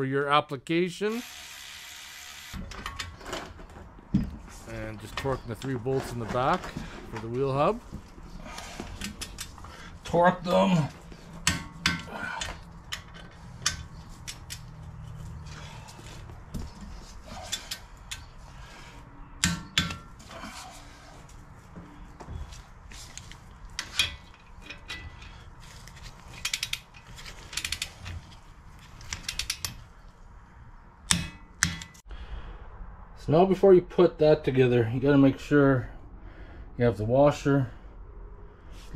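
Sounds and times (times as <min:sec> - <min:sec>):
metal tool clanks: 0:23.8 - 0:25.4
wrench ratchet clicks: 0:26.4 - 0:26.9, 0:29.2 - 0:29.8.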